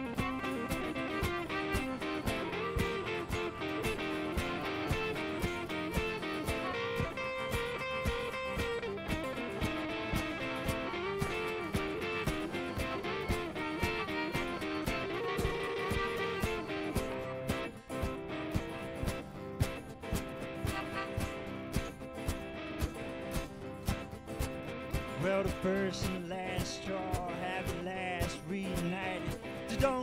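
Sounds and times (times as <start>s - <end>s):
acoustic guitars playing: 0.0s - 30.0s.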